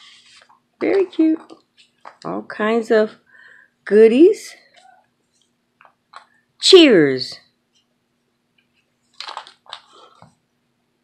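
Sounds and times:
paper pages rustling and crinkling: 0:00.0 - 0:02.2, 0:09.1 - 0:10.4.

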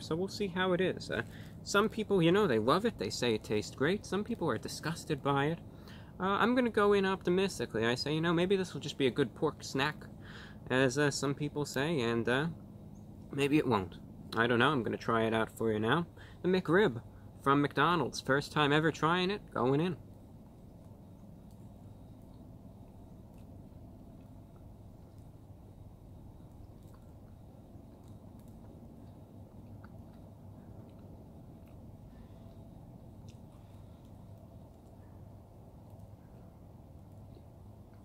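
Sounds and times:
steady low hum: 0:00.0 - 0:38.0
person chewing: 0:26.8 - 0:34.2.

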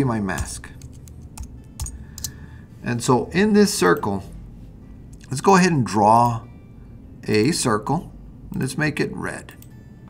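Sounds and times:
person speaking: 0:00.0 - 0:00.9, 0:02.8 - 0:04.4
computer keyboard keystrokes: 0:00.3 - 0:02.4.

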